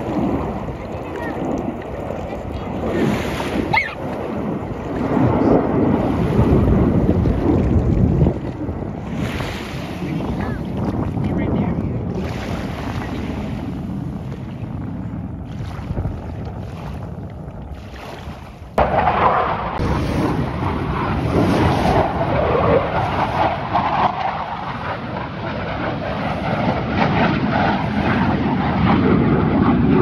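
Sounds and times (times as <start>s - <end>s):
surf lapping: 0.0s - 24.9s
wind buffeting microphone: 0.0s - 30.0s.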